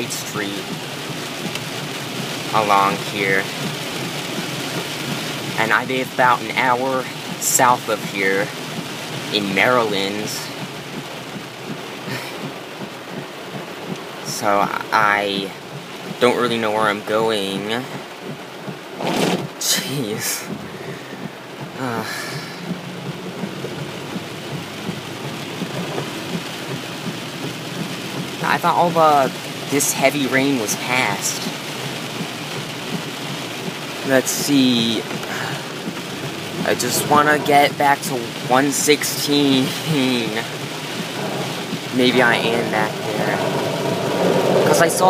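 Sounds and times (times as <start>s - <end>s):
heavy rain on car roof: 0.0s - 45.0s.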